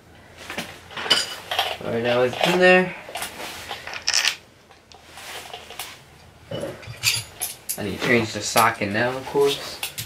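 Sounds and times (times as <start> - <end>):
metal parts rattling: 1.0 - 4.4, 6.8 - 7.8
metal tools clinking: 1.0 - 4.4, 6.5 - 8.7.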